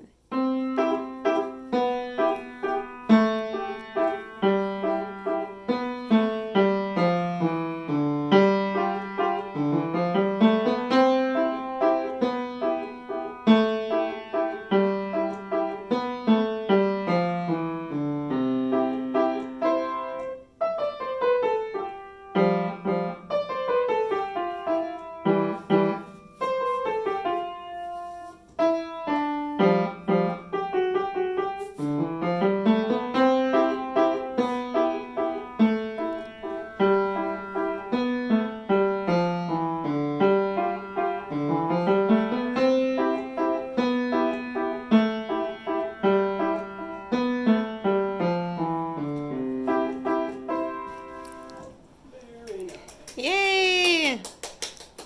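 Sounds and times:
upright piano playing: 0.0s - 51.9s.

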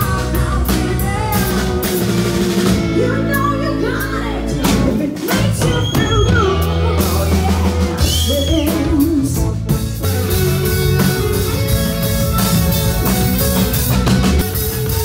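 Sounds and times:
woman singing: 0.0s - 9.7s
bass guitar: 0.0s - 15.0s
drum kit: 0.0s - 15.0s
electric guitar: 0.0s - 15.0s.

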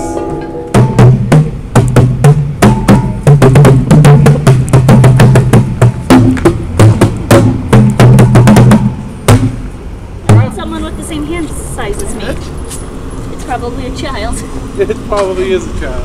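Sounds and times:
hand drums rhythmic beats: 0.0s - 9.7s, 10.3s - 10.8s.

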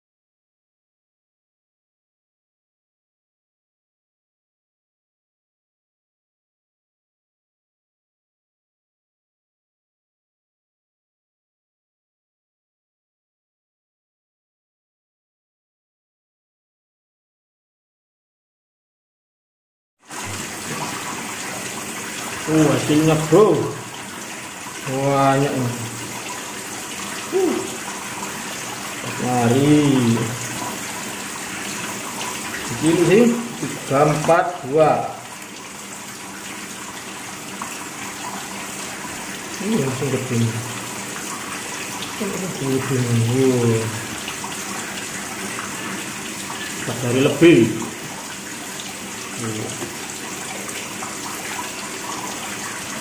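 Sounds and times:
water trickling: 20.1s - 53.0s
person grunting: 27.3s - 27.8s.

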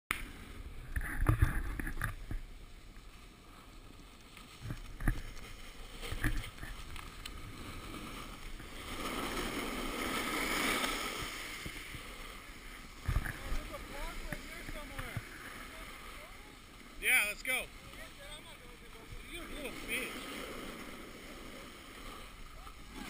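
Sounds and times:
snowboard scraping over packed snow: 0.2s - 23.0s.

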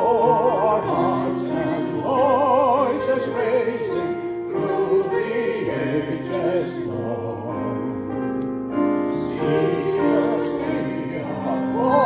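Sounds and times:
choir singing a hymn: 0.0s - 8.4s, 9.0s - 12.0s.

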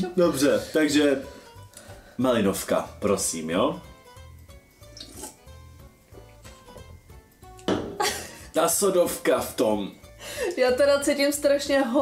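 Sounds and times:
soft background music: 0.0s - 12.0s
drinking from metal can: 5.0s - 5.5s.

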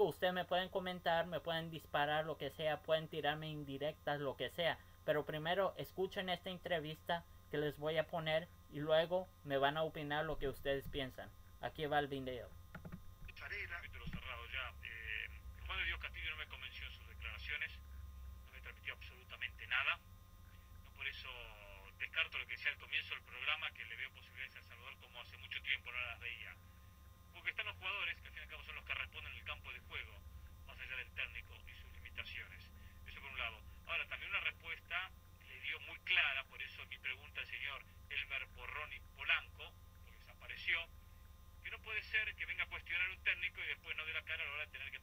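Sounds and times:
speech over telephone line: 0.0s - 12.5s, 13.3s - 26.6s, 27.3s - 41.0s, 41.6s - 45.0s
steady low hum: 0.0s - 45.0s.

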